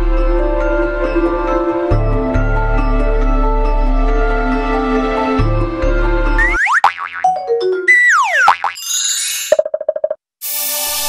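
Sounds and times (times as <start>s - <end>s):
cartoon boing jingle: 6.4s - 9.2s.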